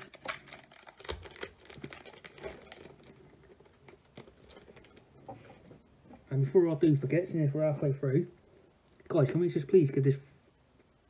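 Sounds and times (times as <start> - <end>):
foil wrapper crinkling: 0.0 - 5.1.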